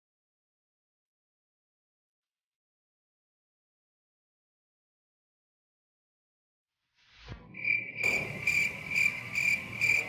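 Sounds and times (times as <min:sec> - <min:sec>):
cricket chirping: 0:07.4 - 0:10.0.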